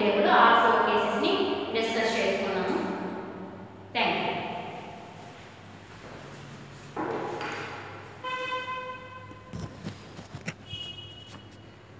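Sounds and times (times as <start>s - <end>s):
horn toot: 8.2s - 9.6s.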